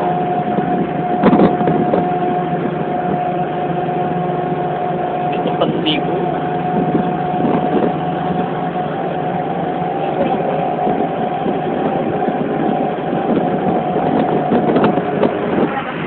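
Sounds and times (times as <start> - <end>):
high steady hum: 0.0 - 16.0
vehicle engine running: 0.0 - 16.0
people chattering: 9.8 - 11.0.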